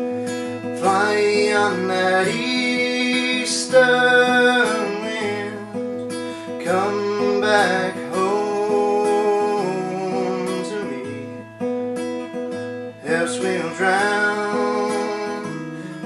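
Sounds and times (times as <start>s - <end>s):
acoustic guitar strummed chords: 0.0s - 16.0s.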